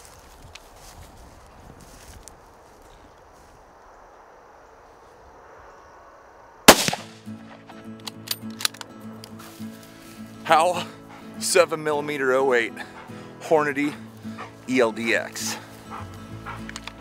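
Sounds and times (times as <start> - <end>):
open-field ambience: 0.0 - 17.0
rifle shot: 6.7 - 7.6
background music: 6.8 - 17.0.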